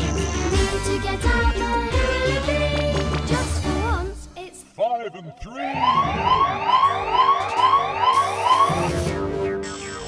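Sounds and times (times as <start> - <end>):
electronic siren-like whooping: 5.6 - 10.0.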